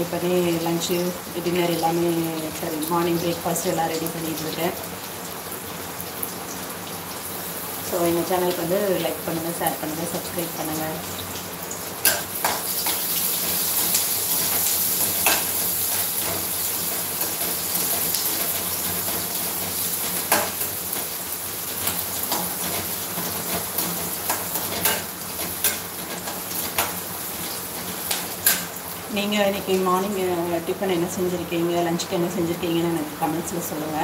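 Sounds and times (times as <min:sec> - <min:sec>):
food sizzling in a pan: 0:00.0 - 0:34.0.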